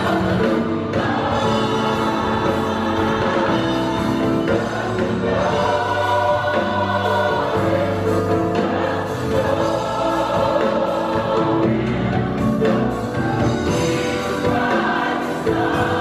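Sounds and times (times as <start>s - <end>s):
gospel choir singing: 0.0s - 16.0s
keyboard: 0.0s - 16.0s.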